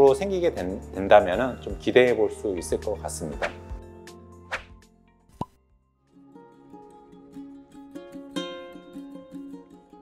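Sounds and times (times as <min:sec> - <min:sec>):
background music: 0:00.0 - 0:10.0
light music with plucked notes: 0:00.0 - 0:10.0.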